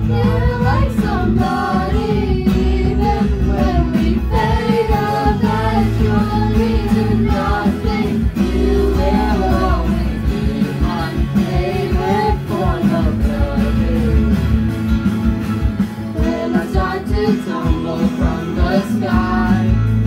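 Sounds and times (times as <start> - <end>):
young voices singing together: 0.0 - 14.6, 16.0 - 20.0
strummed acoustic guitar: 0.0 - 20.0.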